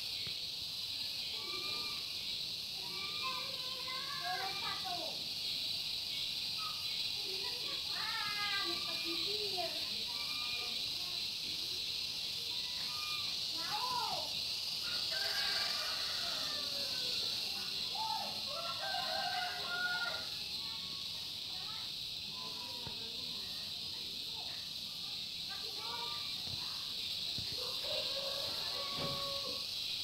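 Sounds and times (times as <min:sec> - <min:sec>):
steady high hiss: 0:00.0 - 0:30.0
fowl calling: 0:27.6 - 0:29.7.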